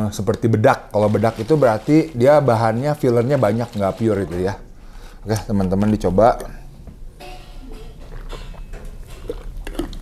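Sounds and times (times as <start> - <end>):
person gulping: 8.0 - 10.0
wet mouth and swallowing clicks: 8.0 - 10.0.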